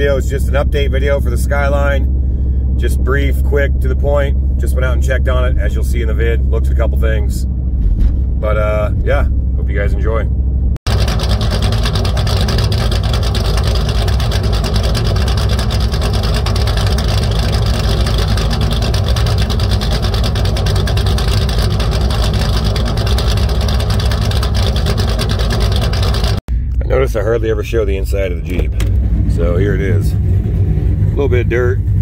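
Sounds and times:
engine exhaust idling: 0:00.0 - 0:32.0.

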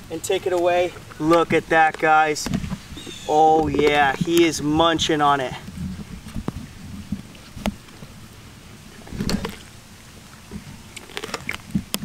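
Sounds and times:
lion chewing and crunching: 0:00.0 - 0:12.0.

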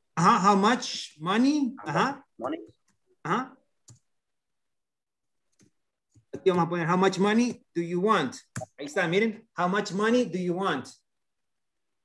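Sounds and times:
man saying uh-huh: 0:01.7 - 0:02.3.

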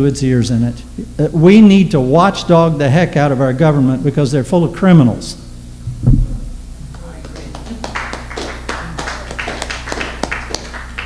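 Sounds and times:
steady low hum: 0:00.0 - 0:11.0
audience clapping: 0:06.9 - 0:11.0.

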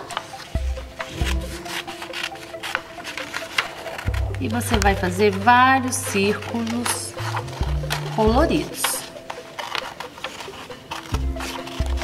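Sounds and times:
scissors snipping paper: 0:00.0 - 0:12.0.

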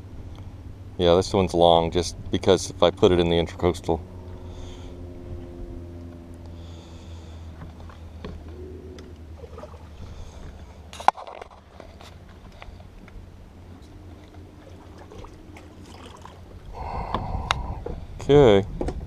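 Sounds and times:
electric boat motor humming: 0:00.0 - 0:18.2
water against boat hull: 0:07.6 - 0:18.0.

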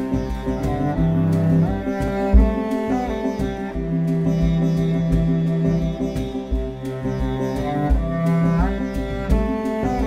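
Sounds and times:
string instrument music: 0:00.0 - 0:10.0.

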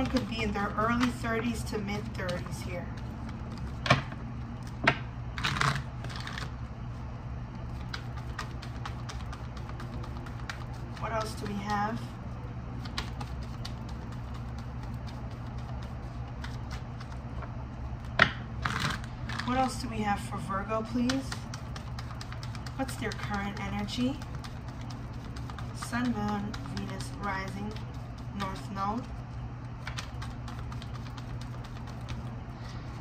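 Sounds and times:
cards being shuffled: 0:00.0 - 0:06.6, 0:07.7 - 0:11.5, 0:12.8 - 0:17.5, 0:18.1 - 0:19.7, 0:21.0 - 0:28.8, 0:29.8 - 0:32.3
steady low hum: 0:00.0 - 0:33.0.

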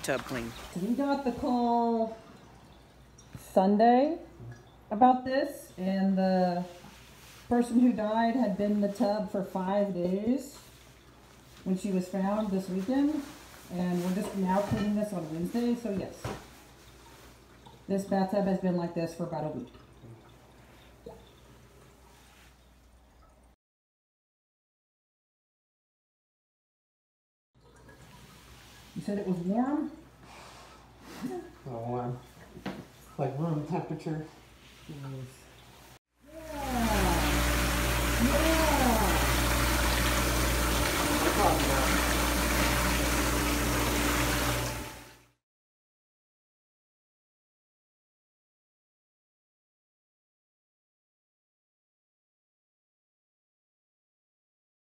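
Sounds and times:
faucet filling a bathtub: 0:00.0 - 0:03.4, 0:14.4 - 0:23.6, 0:27.6 - 0:32.5, 0:35.0 - 0:45.3
liquid drip: 0:01.4 - 0:03.4, 0:04.3 - 0:04.9, 0:16.5 - 0:17.9, 0:19.4 - 0:23.6, 0:27.6 - 0:29.0.

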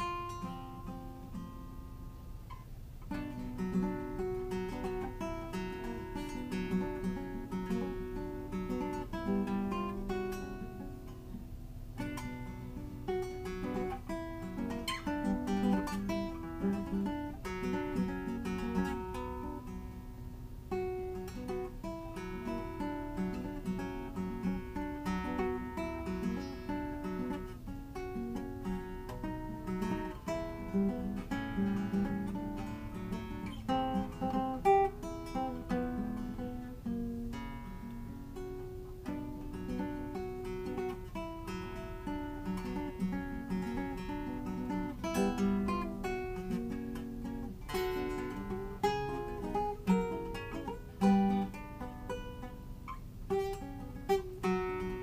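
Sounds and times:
classical guitar playing: 0:00.0 - 0:55.0.

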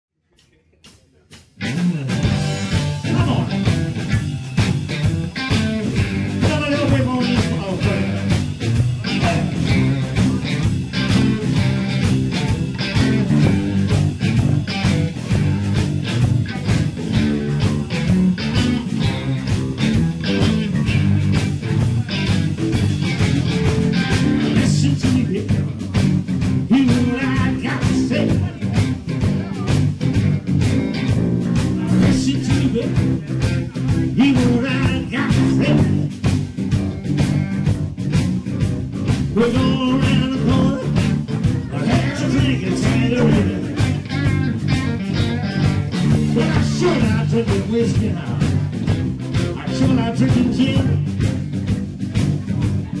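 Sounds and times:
bass guitar: 0:00.3 - 0:53.0
drum beat: 0:00.4 - 0:53.0
blues-rock band playing: 0:00.8 - 0:53.0
electric guitar: 0:00.8 - 0:53.0.

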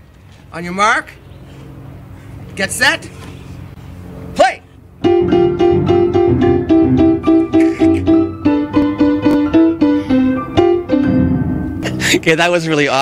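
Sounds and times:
upright piano played clumsily: 0:05.0 - 0:12.2.

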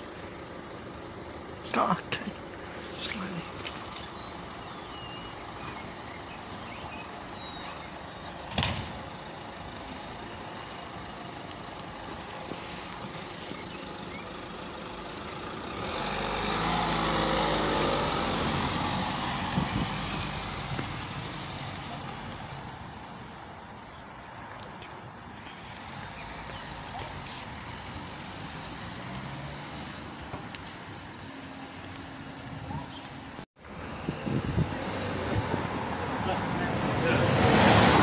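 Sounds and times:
car engine pulling away: 0:00.0 - 0:38.0
street noise: 0:00.0 - 0:38.0.

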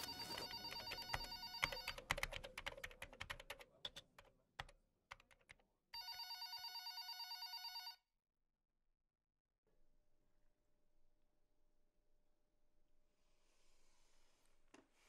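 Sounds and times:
electronic telephone ringing: 0:00.0 - 0:02.1, 0:06.0 - 0:08.0
computer keyboard typing: 0:00.0 - 0:05.7.

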